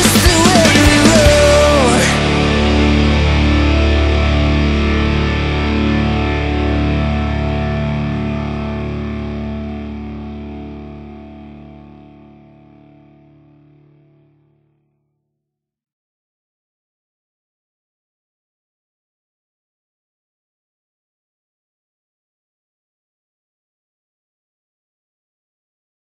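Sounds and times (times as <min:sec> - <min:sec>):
distorted electric guitar chord ringing: 0:00.0 - 0:14.4.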